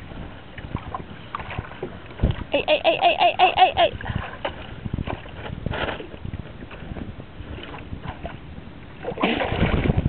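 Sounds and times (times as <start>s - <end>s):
water lapping against a hull: 0.0s - 10.0s
wind on microphone: 0.0s - 10.0s.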